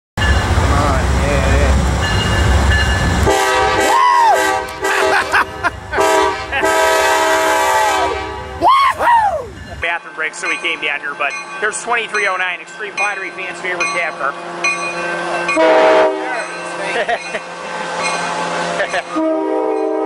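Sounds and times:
diesel locomotive rumble: 0.2s - 20.0s
train horn blasts: 3.2s - 5.3s, 6.0s - 8.6s, 15.5s - 16.5s, 18.4s - 20.0s
people whooping: 3.8s - 4.6s, 8.6s - 9.6s.

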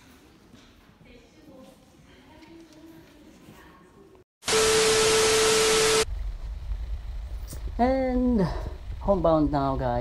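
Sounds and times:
static hiss with steady tone: 4.4s - 6.1s.

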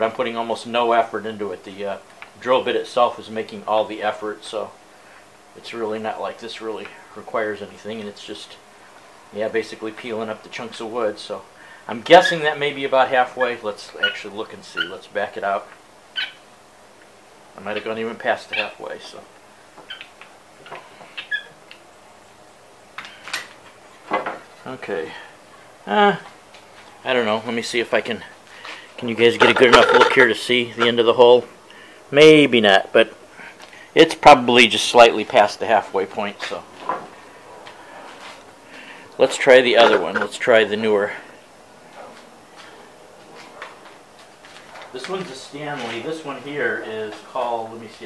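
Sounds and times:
man speaking: 5.6s - 8.6s, 9.4s - 15.7s, 17.6s - 19.3s, 24.6s - 26.3s, 27.0s - 28.4s, 29.0s - 31.5s, 32.1s - 33.2s, 34.0s - 36.7s, 39.2s - 41.3s, 44.9s - 48.0s.

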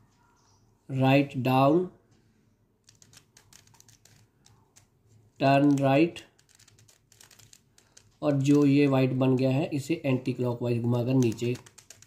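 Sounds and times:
puzzle cube layers clicking: 2.8s - 9.7s, 10.9s - 12.0s.

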